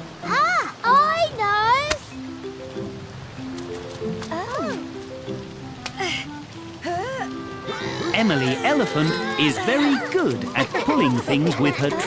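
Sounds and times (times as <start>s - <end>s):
faint rain hiss: 0.0s - 12.0s
gentle cartoon music: 0.0s - 12.0s
cartoon character vocal cry: 6.9s - 10.2s.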